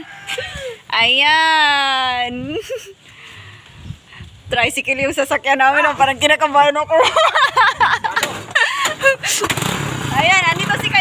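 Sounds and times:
people talking: 0.0 - 2.9, 4.5 - 9.5, 10.1 - 11.0
people laughing: 6.9 - 9.5
motorcycle engine starting and idling: 7.8 - 11.0.

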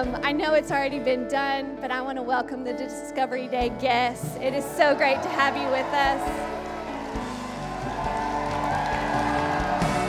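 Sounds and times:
electric guitar chords: 0.0 - 10.0
soft live band music: 0.0 - 10.0.

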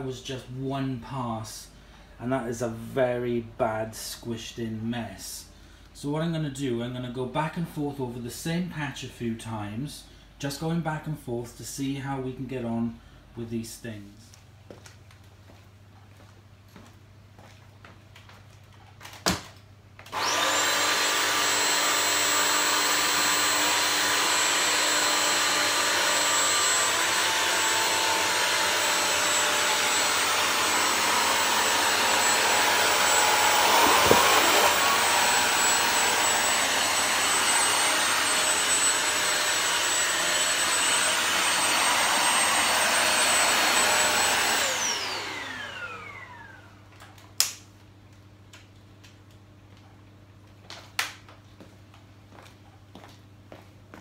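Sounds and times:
floor cleaner motor whining: 20.0 - 46.8.

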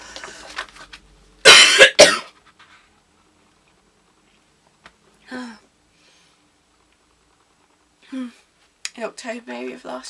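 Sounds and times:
woman coughing: 1.4 - 2.3.

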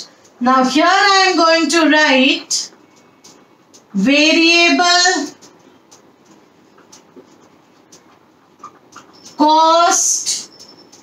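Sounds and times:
marker scratching on whiteboard: 2.5 - 11.0
marker squeaks: 4.8 - 11.0.

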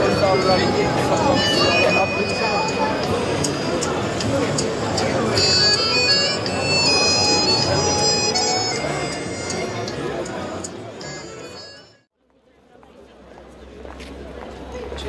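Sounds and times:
street crowd chatter: 0.0 - 15.0.

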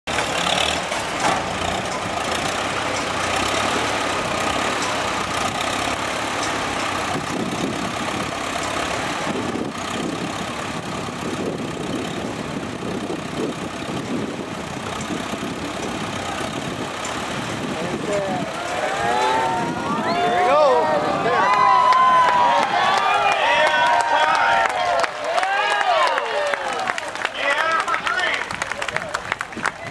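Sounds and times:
tractor engine running slowly: 0.1 - 21.2
crowd voices: 0.2 - 29.9.

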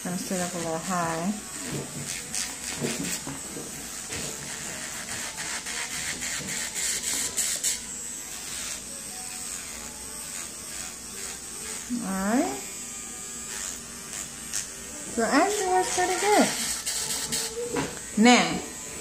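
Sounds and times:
electric nail drill whine: 0.0 - 19.0.

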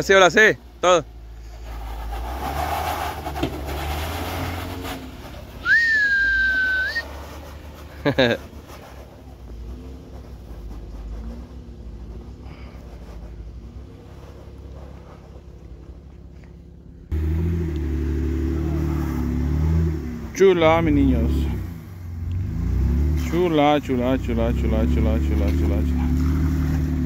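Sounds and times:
off-road engine rumbling under load: 0.0 - 27.0
sharp steady whistle: 5.6 - 7.1
person shouting: 5.7 - 7.0.

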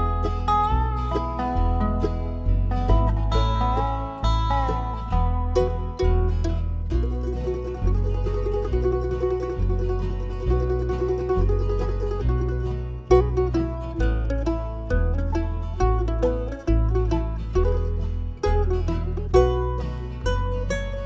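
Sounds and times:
bass line: 0.0 - 21.0
plucked acoustic strings: 0.0 - 21.0.

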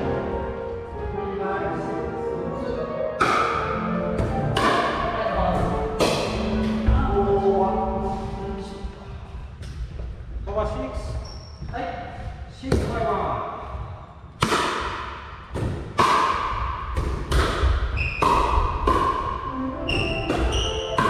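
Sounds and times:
paddles hitting ball with sharp pops: 3.2 - 7.0, 14.4 - 21.0.

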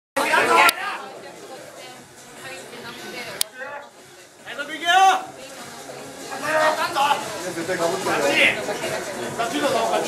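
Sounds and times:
chatter of people in a hall: 0.2 - 10.0.

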